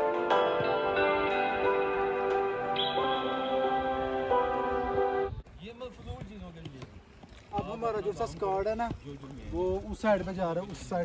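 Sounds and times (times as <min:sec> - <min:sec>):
background music: 0:00.0 - 0:05.4.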